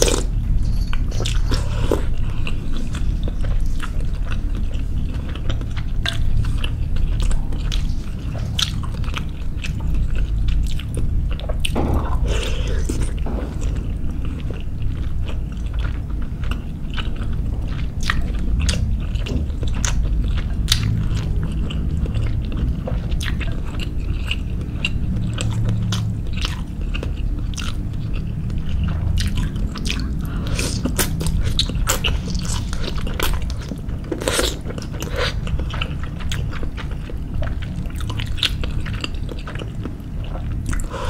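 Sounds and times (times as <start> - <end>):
close chewing of soft food: 0.0 - 41.0
low rumble: 0.0 - 41.0.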